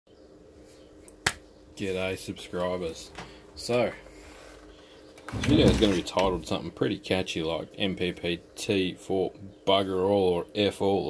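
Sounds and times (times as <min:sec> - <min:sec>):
faint steady hum: 0:00.1 - 0:11.0
man speaking: 0:01.8 - 0:04.0, 0:05.4 - 0:11.0.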